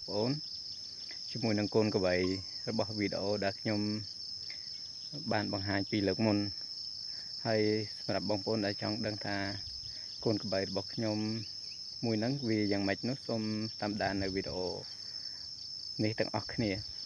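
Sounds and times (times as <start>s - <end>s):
man talking: 0.0s - 0.4s, 1.3s - 4.1s, 5.2s - 6.6s, 7.4s - 14.8s, 16.0s - 16.9s
high-pitched insect drone: 0.0s - 17.0s.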